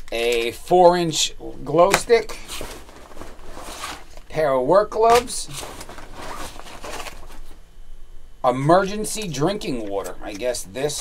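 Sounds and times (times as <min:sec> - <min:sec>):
rummaging in nylon bag: 0:02.1 - 0:04.4, 0:05.0 - 0:07.6.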